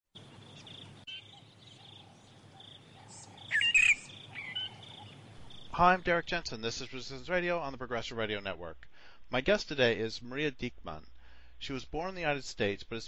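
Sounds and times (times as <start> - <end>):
birds calling: 0.2 - 7.2
loud bird chirps: 0.4 - 5.8.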